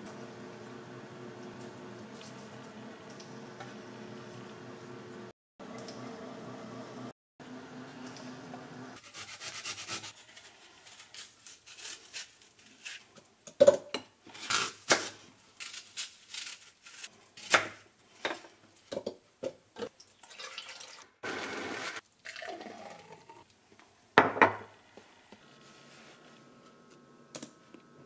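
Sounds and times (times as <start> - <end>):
knife scraping apple skin: 9.0 - 13.1, 14.3 - 17.6
blender whirring: 21.2 - 22.0
thick drink pouring into glass: 22.2 - 23.4.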